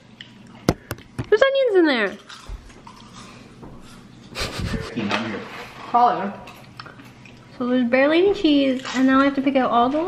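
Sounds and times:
woman laughing: 4.4s - 4.9s
woman speaking: 7.6s - 10.0s.

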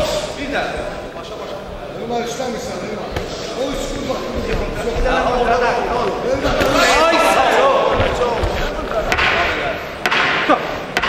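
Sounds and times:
voices shouting: 6.4s - 9.1s.

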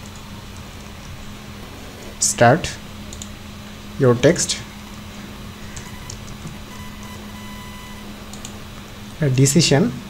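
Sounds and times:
low electrical hum: 0.0s - 10.0s
computer mouse clicks: 3.1s - 3.3s, 8.3s - 8.6s.

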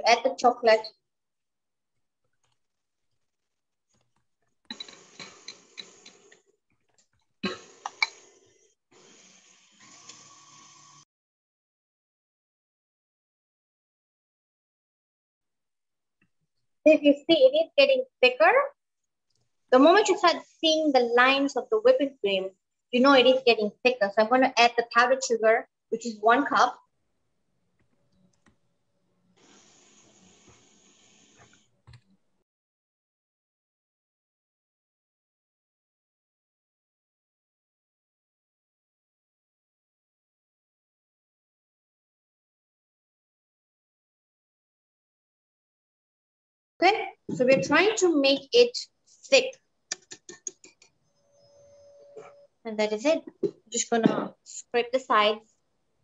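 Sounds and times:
faint hiss: 29.4s - 31.6s.

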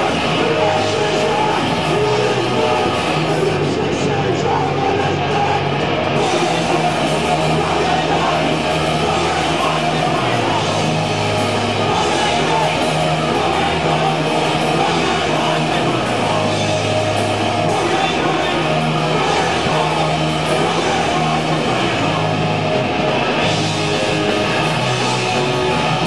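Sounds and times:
bass guitar: 0.0s - 26.0s
electric guitars: 0.0s - 26.0s.

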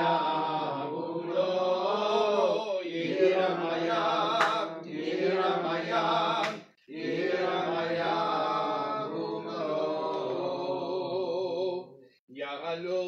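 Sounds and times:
men chanting melodically: 0.0s - 12.0s.

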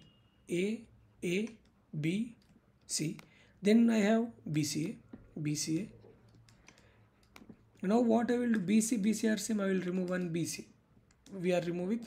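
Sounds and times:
stylus tapping on writing surface: 6.3s - 7.7s.

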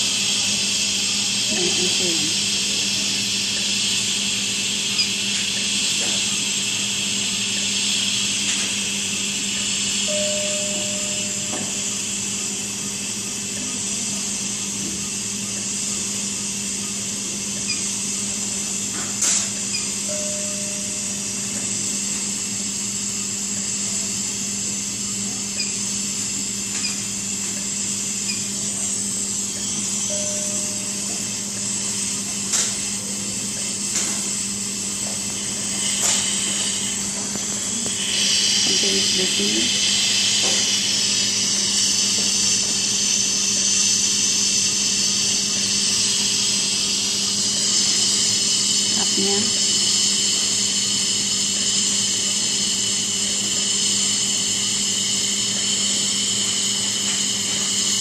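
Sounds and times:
hiss of gas flow: 0.0s - 10.6s, 33.8s - 58.0s
steady low hum: 0.0s - 58.0s
short beep-like tone: 10.1s - 11.8s.

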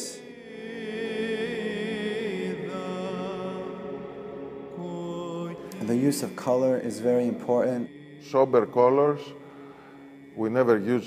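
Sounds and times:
voice chanting long notes: 0.0s - 11.0s.

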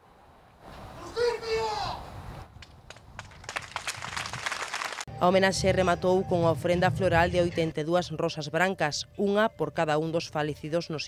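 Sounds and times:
person shouting: 1.1s - 2.0s
crowd applause: 3.2s - 5.1s.

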